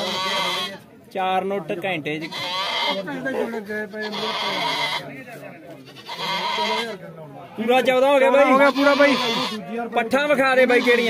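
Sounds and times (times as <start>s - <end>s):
goat bleating: 0.0s - 0.8s, 2.2s - 3.2s, 3.9s - 5.1s, 5.8s - 7.0s, 8.4s - 9.7s, 10.5s - 11.0s
men's voices: 2.9s - 5.8s, 6.6s - 11.0s.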